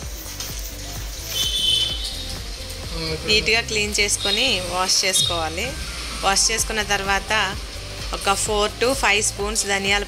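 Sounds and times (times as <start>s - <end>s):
background music: 0.0s - 10.0s
water splashing in a pot: 0.4s - 2.9s.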